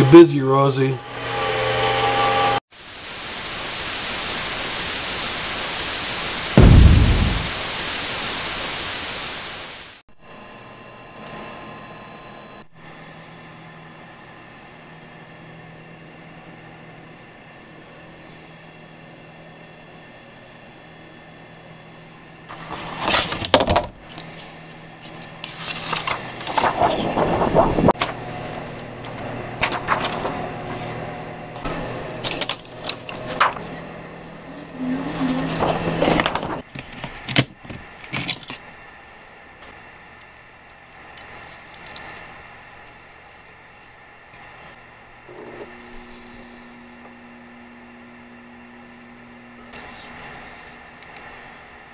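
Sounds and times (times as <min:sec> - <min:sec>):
printer humming: 0:25.4 - 0:36.7.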